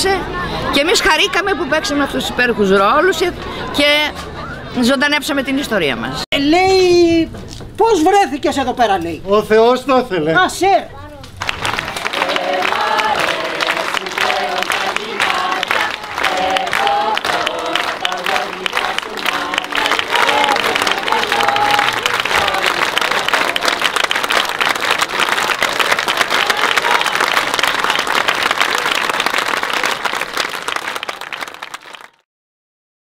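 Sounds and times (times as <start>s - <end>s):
audience applauding: 11.4s - 32.2s.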